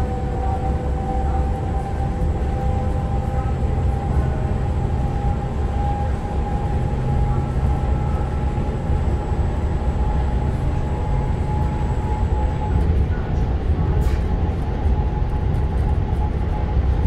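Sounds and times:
steady whine: 0.0s - 17.0s
train wheels rumbling on rail: 0.0s - 17.0s.

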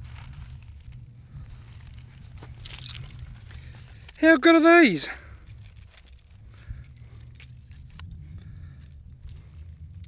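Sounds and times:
wind rumble on microphone: 0.0s - 4.2s, 5.2s - 10.0s
faint rustling: 0.0s - 4.3s.

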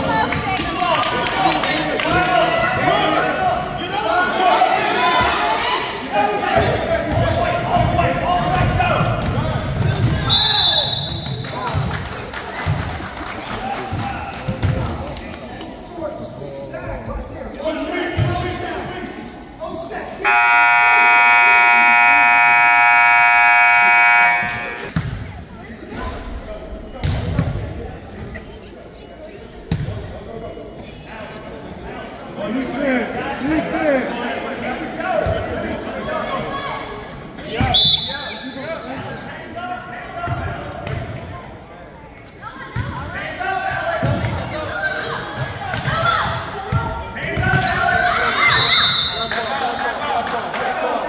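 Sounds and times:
spectators chatting: 0.0s - 51.0s
scoreboard buzzer blast: 20.2s - 24.9s.

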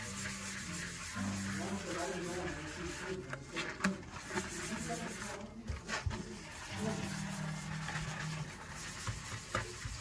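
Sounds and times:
sponge scrubbing steel sink: 0.0s - 10.0s.

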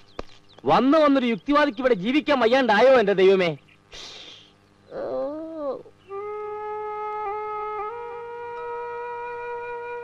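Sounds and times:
short breathy hiss: 3.9s - 4.6s.

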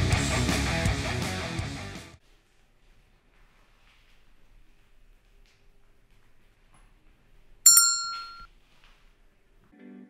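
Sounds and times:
bright metallic ding: 7.7s - 8.5s.

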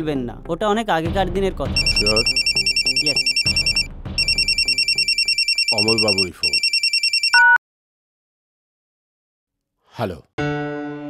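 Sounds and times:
phone ringtone pulsing: 1.8s - 7.6s.

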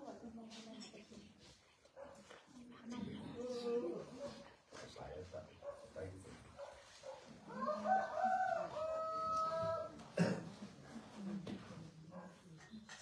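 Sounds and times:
rooster crowing: 7.5s - 10.0s.

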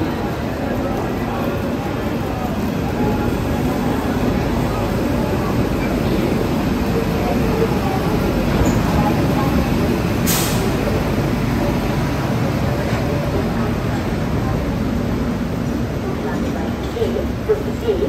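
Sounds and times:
train wheels rumbling: 0.0s - 18.0s
short hiss: 10.3s - 10.7s.

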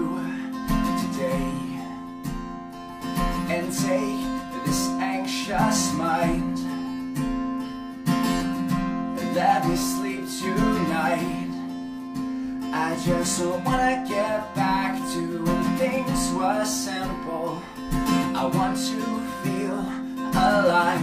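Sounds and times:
acoustic guitar strumming: 0.0s - 21.0s.

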